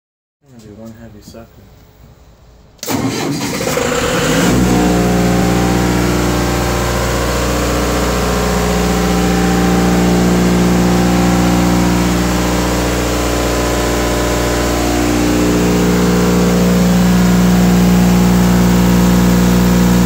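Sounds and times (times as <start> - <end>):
generator engine starting and running: 2.7 - 20.0.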